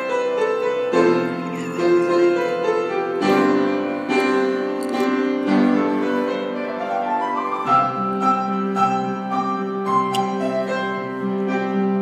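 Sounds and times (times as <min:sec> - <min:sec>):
slow solo piano: 0:00.0 - 0:12.0.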